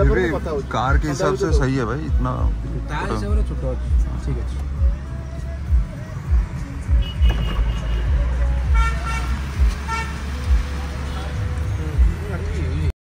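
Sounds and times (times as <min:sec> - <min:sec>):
vehicle horn toots: 0:07.0 - 0:10.2.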